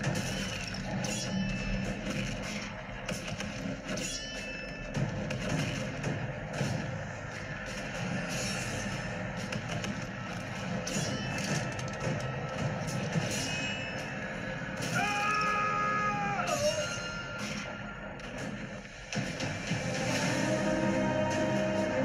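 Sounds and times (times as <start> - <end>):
metallic ring of blades clashing: 0.0 - 2.4, 3.8 - 5.0, 10.6 - 11.9, 12.8 - 15.6, 16.4 - 17.8
action film score with drums: 0.0 - 22.0.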